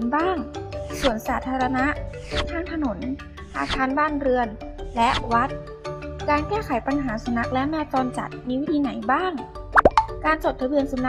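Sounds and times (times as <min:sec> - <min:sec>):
light children's music: 0:00.0 - 0:11.0
high-pitched narrating voice: 0:03.6 - 0:04.0
cartoon plop sound effect: 0:09.8 - 0:10.2.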